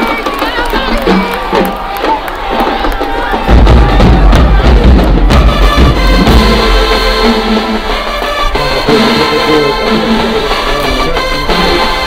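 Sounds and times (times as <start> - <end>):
marching band brass melody: 0.0 - 12.0.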